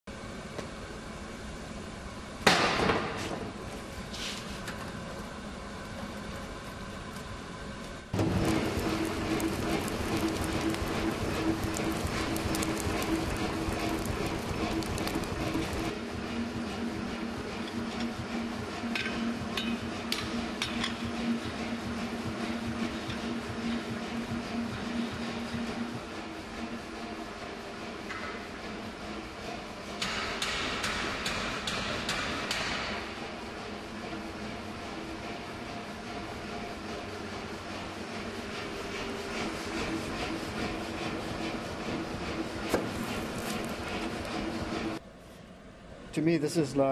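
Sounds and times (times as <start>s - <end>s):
forge fire and blower humming: 0.1s - 46.9s.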